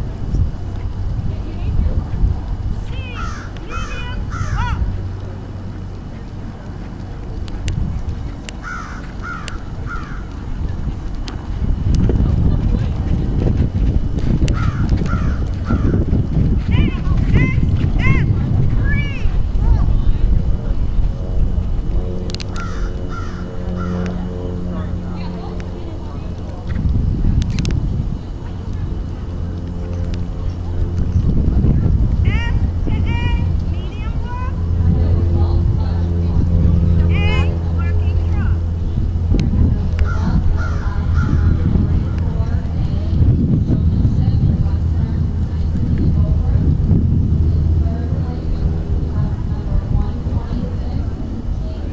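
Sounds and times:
faint indistinct voices: 0.0 - 51.9
low outdoor rumble: 0.0 - 51.9
steady droning hum: 0.0 - 51.9
bird calls: 3.0 - 4.8, 8.6 - 10.4, 14.5 - 16.0, 22.5 - 24.1
crow cawing: 3.1 - 4.8, 8.6 - 10.3, 14.5 - 16.0, 22.5 - 24.1, 40.1 - 41.5.

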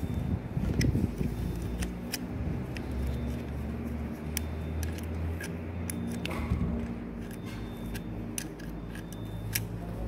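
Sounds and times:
spanner clicking on bolts: 0.7 - 9.8.

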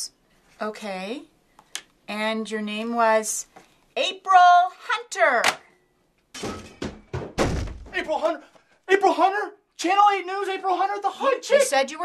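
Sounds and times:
thuds and knocks: 6.4 - 8.0
heavy thud with deep boom: 7.2 - 7.9.

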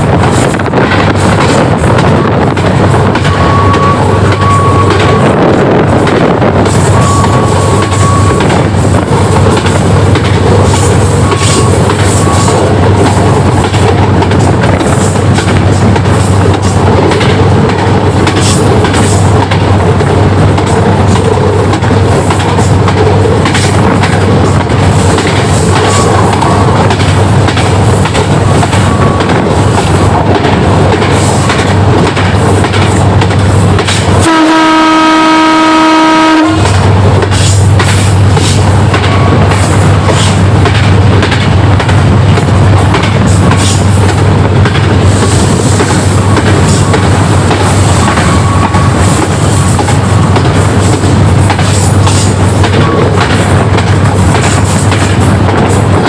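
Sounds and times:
train rumbling on track: 0.0 - 56.0
wheels clicking over rail joints: 7.7 - 34.3
train horn blast: 34.2 - 36.9.

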